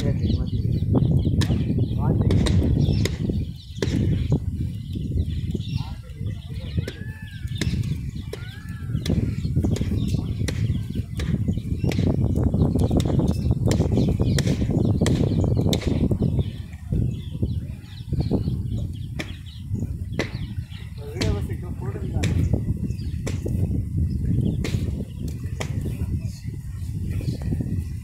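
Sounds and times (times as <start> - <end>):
wind rumbling on microphone: 0.0 - 28.0.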